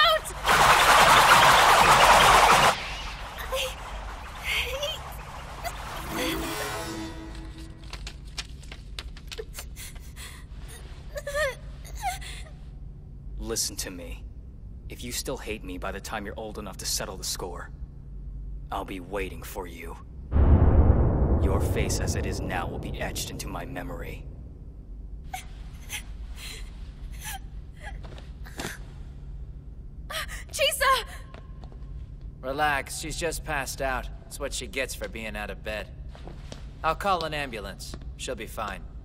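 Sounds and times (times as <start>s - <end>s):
low steady hum: 0.0s - 39.0s
girl crying: 9.4s - 12.6s, 25.3s - 28.8s
man's voice: 21.4s - 24.2s.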